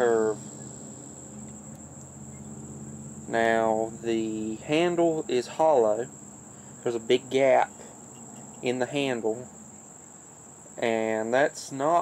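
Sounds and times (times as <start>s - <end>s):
crickets trilling: 0.0s - 12.0s
faint low hum: 0.0s - 12.0s.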